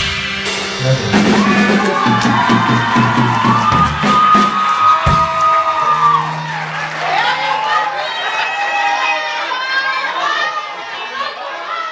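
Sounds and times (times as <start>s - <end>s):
live rock band playing: 0.0s - 7.8s
crowd cheering: 0.7s - 11.9s.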